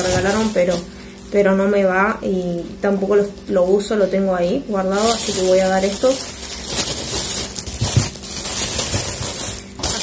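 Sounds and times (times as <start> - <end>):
plastic bags crinkling: 0.0 - 10.0.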